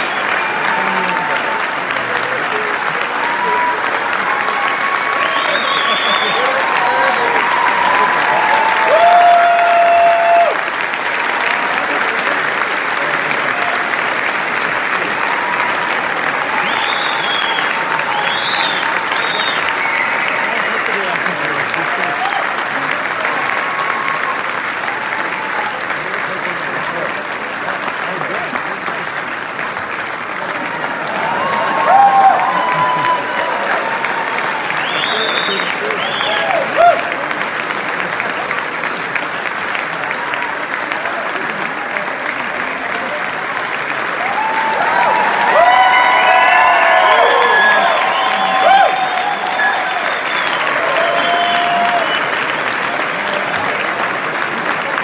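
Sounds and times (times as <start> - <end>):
audience applauding: 0.0 - 55.0.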